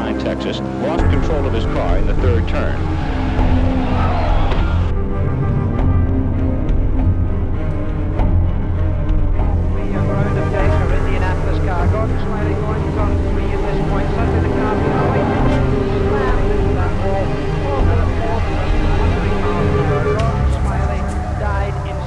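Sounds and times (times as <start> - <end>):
indistinct voices: 0.0 - 5.1, 9.5 - 22.0
music: 0.0 - 22.0
racing car engine: 0.2 - 5.2, 9.7 - 21.7.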